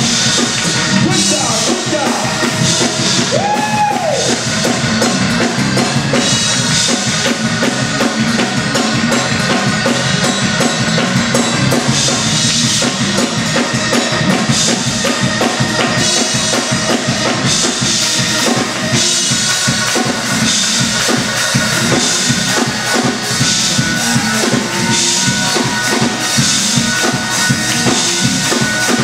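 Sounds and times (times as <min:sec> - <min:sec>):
church band playing up-tempo music: 0:00.0 - 0:29.0
drum kit fast beat: 0:00.0 - 0:29.0
rising-and-falling tone: 0:20.0 - 0:29.0.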